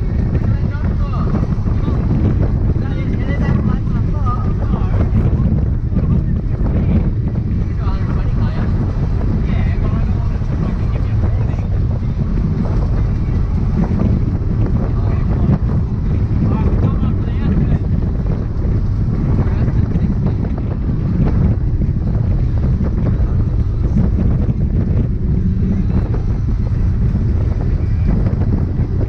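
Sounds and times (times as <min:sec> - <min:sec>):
car engine drone: 0:00.0 - 0:29.0
road and wind noise: 0:00.0 - 0:29.0.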